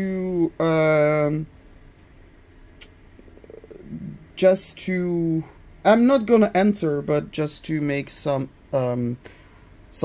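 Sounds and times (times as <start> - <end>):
faint creaky throat sound: 3.2 - 4.3.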